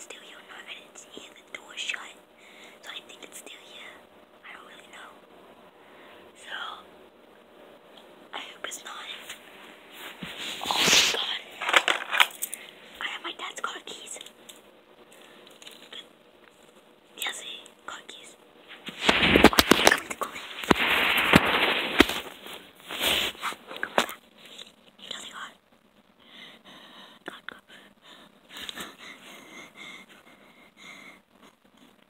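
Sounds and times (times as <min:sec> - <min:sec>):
phone rubbing against clothing: 0:10.0 - 0:12.2, 0:18.7 - 0:24.0.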